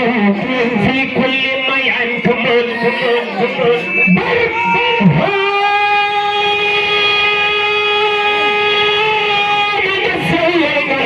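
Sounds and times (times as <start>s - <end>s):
man chanting into a microphone: 0.0s - 11.0s.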